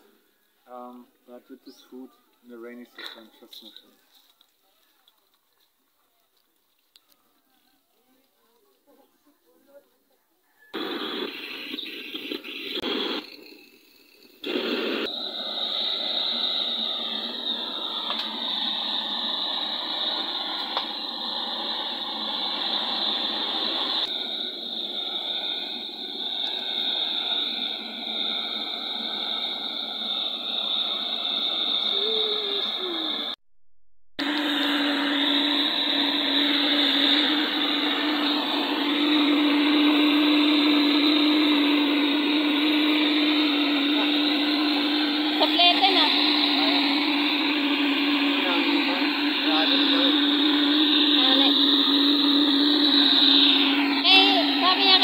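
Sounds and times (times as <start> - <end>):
blowtorch flame hissing: 10.8 - 33.4, 34.2 - 55.0.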